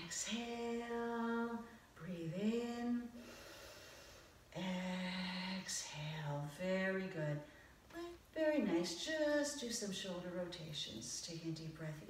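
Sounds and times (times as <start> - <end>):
woman singing long held notes: 4.5 - 7.3.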